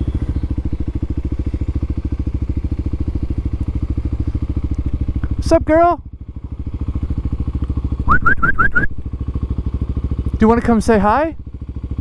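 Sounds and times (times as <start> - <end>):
motorcycle engine running at low revs: 0.0 - 12.0
person whistling squeaks to animal: 8.1 - 8.9.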